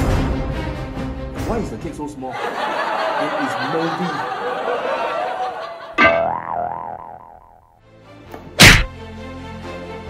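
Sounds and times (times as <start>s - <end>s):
cartoon boing twang: 6.0s - 7.7s.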